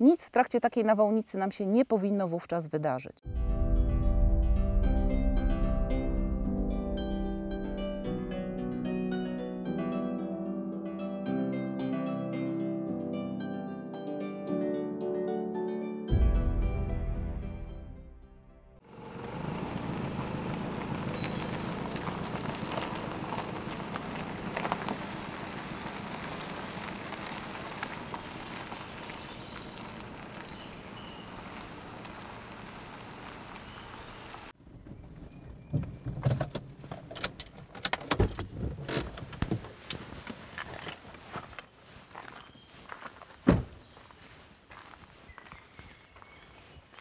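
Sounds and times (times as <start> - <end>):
car engine and tyres driving slowly: 18.8 - 47.0
footsteps on gravel: 19.3 - 32.6, 39.9 - 47.0
car door opening: 43.4 - 43.8.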